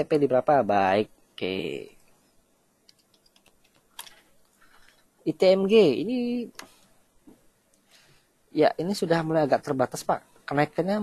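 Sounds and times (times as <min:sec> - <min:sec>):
faint typing on keyboard: 0:01.9 - 0:05.1.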